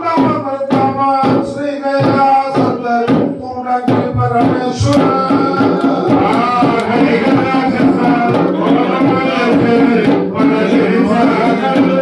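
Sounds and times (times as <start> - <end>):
drums struck in steady rhythm: 0.0 - 12.0
sung chant: 0.0 - 12.0.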